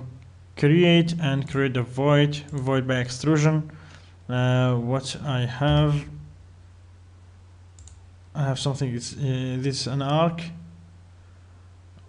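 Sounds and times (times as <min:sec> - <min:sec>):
low steady hum: 0:00.0 - 0:12.0
computer mouse clicks: 0:07.8 - 0:08.0.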